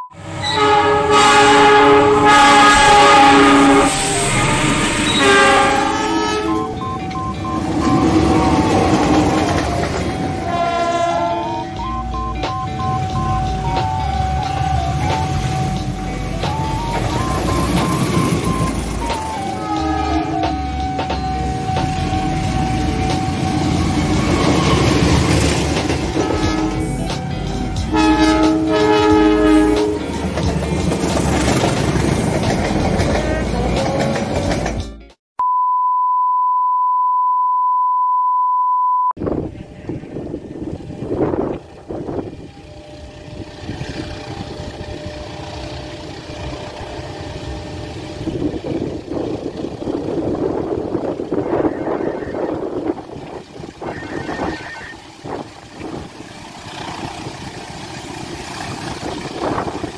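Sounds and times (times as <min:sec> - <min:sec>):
distant train: 0:00.2 - 0:35.0, 0:39.2 - 0:59.9
passenger train passing: 0:00.2 - 0:35.0, 0:39.2 - 0:59.9
train horn: 0:00.4 - 0:06.8, 0:10.1 - 0:12.1, 0:19.4 - 0:25.4, 0:26.0 - 0:30.3, 0:51.0 - 0:53.0, 0:53.8 - 0:55.4
high beep-like tone: 0:06.4 - 0:09.1, 0:11.4 - 0:15.8, 0:16.4 - 0:19.4, 0:35.4 - 0:39.2.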